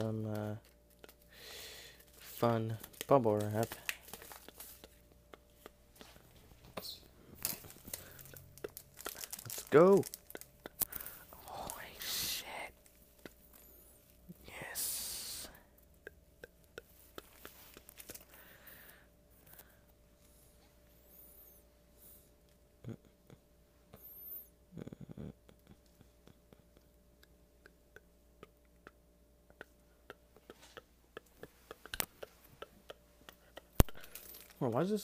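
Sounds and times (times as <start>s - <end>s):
bubble wrap crinkling: 2.0s - 5.1s, 6.0s - 12.2s, 17.2s - 18.4s, 33.8s - 35.0s
plastic bag crinkling: 7.3s - 11.9s, 33.9s - 35.0s.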